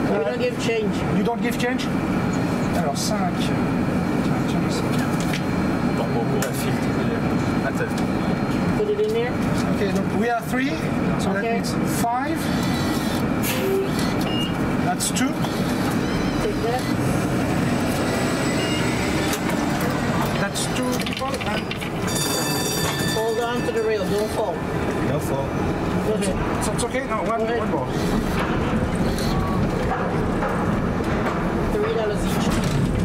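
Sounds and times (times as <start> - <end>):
passengers chatting: 0.0 - 33.0
vehicle and street noise: 0.0 - 33.0.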